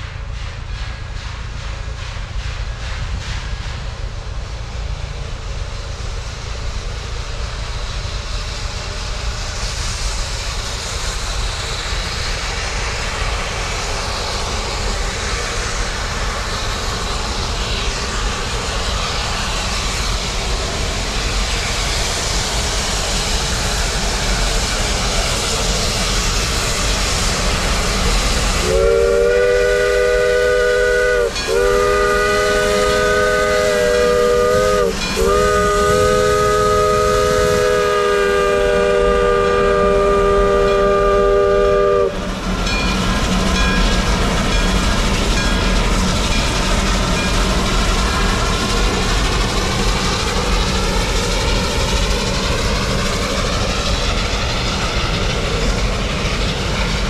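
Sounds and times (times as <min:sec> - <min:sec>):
steam locomotive hissing and rumbling: 0:00.0 - 0:57.0
chime steam whistle blasts: 0:28.5 - 0:46.6.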